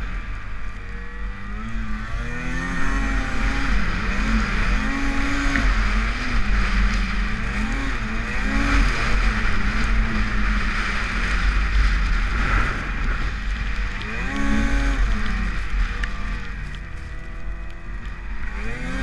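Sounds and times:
wind noise: 0.0 - 19.0
snowmobile engine revving: 0.2 - 19.0.

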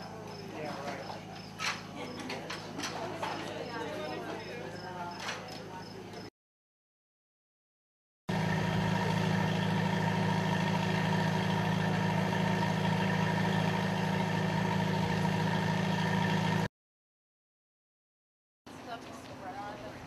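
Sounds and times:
low mechanical hum: 8.3 - 16.7.

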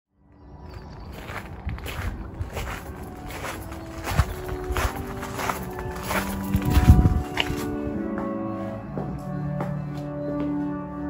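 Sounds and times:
footsteps on gravel: 0.5 - 10.6.

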